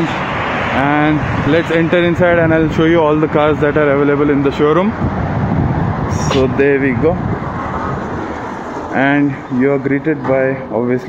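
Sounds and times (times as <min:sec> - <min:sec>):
road traffic rumbling hiss: 0:00.0 - 0:11.0.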